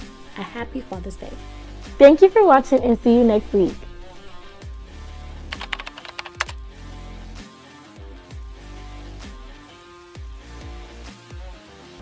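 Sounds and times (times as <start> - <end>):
background music with low bass: 0.0 - 12.0
keyboard typing clicks: 5.5 - 6.6.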